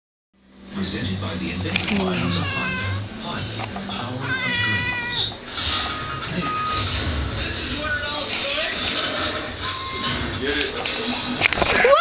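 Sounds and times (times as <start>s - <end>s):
cat meowing: 2.0s - 3.1s, 4.1s - 5.4s, 6.4s - 6.8s.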